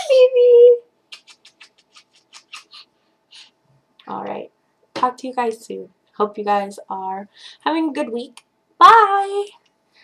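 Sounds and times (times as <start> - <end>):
quick kisses lip smacks: 1.1 - 3.5.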